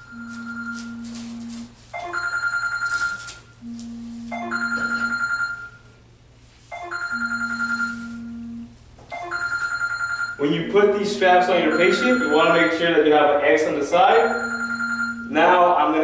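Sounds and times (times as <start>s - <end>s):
trilled electronic phone ringtone: 0.0s - 5.9s, 6.7s - 10.5s, 11.6s - 13.0s, 14.1s - 15.5s.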